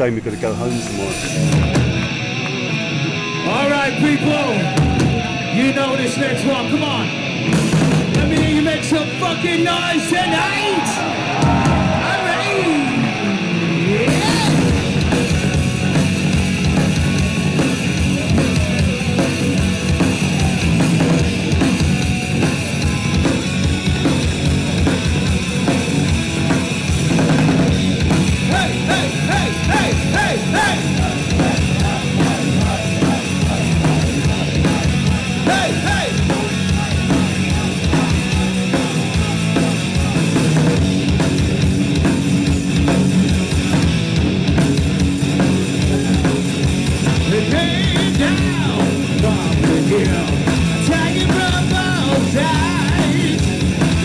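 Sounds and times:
fast drum-kit beat: 0.0s - 2.4s, 3.6s - 13.1s, 13.8s - 54.0s
bass guitar: 0.0s - 54.0s
distorted electric guitars: 0.0s - 54.0s.

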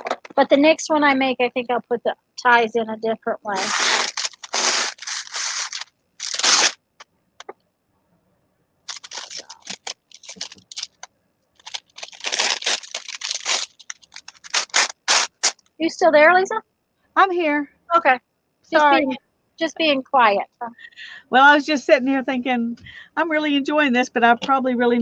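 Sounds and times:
wax paper rustling: 3.5s - 6.8s, 8.9s - 15.7s.

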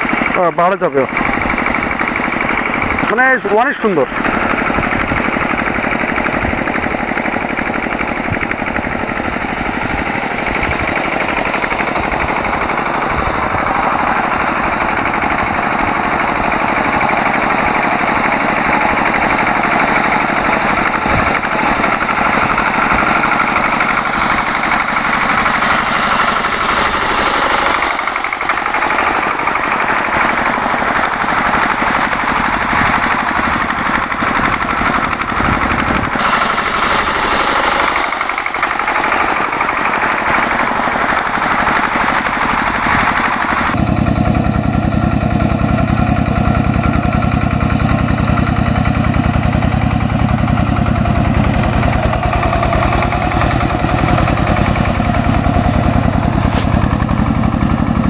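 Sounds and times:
diesel engine chugging: 0.0s - 58.0s.

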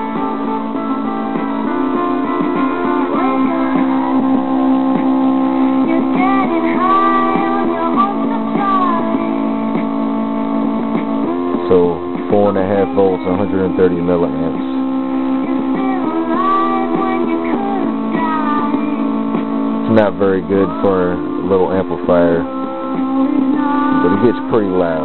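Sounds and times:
guitar music through a speaker: 0.0s - 25.0s.

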